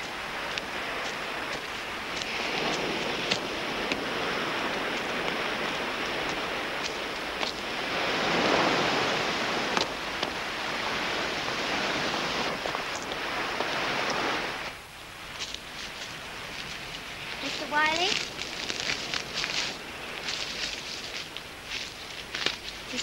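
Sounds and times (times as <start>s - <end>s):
ocean surf washing ashore: 0.0s - 23.0s.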